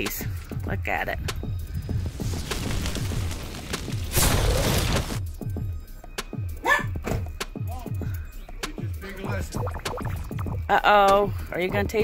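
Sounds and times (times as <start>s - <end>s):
explosion sound effect: 2.2s - 5.2s
music with deep bass beat: 5.3s - 12.0s.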